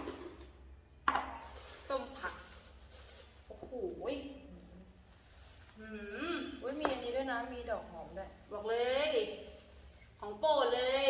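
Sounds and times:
plastic bag crinkling: 0:01.4 - 0:04.1.

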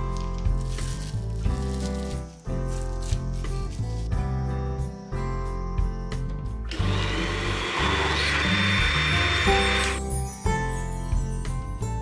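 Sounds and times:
blender running: 0:06.7 - 0:10.0.

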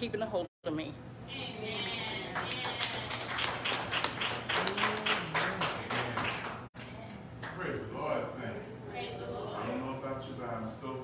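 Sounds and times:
quick hand clapping: 0:02.4 - 0:06.7.

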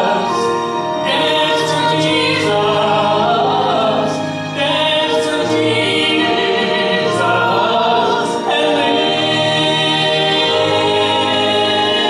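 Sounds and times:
man and woman singing a hymn: 0:00.0 - 0:12.0.

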